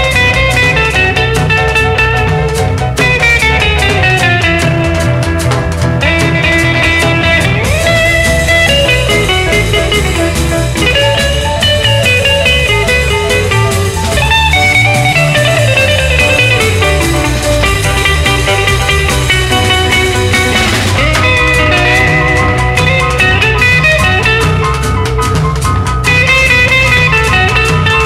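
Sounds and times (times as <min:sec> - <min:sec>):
bass guitar line: 0:00.0 - 0:28.0
drums: 0:00.0 - 0:28.0
electric lead guitar melody: 0:00.0 - 0:28.0.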